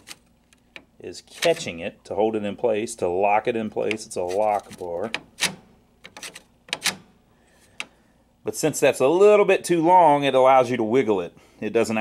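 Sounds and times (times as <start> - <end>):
metal latch clicks: 5.0 - 7.1.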